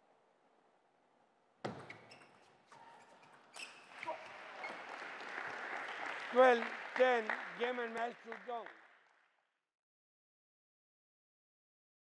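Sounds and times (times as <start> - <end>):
light applause: 3.9 - 9.4.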